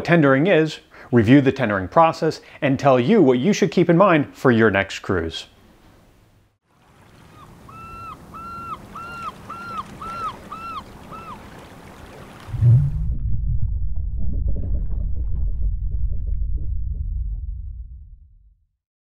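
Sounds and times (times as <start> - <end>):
sea noise: 6.7 - 16.4
deep rumble: 12.5 - 18.7.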